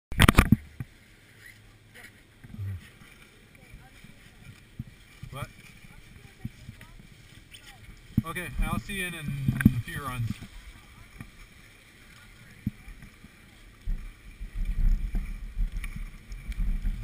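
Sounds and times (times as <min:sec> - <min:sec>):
faint wind: 0:00.1 - 0:17.0.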